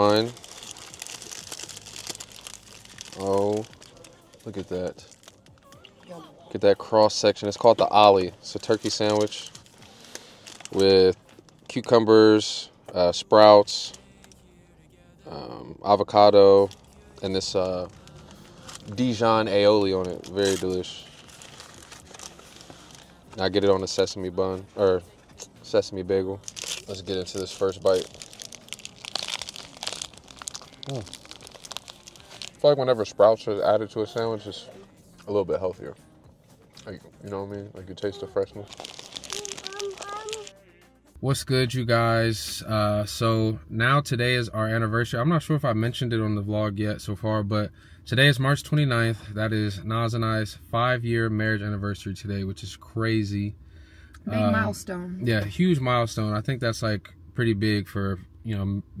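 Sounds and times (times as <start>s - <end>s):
crunchy chewing of a sandwich: 0.0s - 5.7s, 20.0s - 23.4s, 26.4s - 32.6s, 38.6s - 40.6s
paper wrapper crinkling: 0.0s - 6.0s, 7.0s - 12.0s, 16.6s - 24.2s, 26.4s - 33.4s, 38.4s - 40.6s
person saying oh: 54.3s - 55.3s.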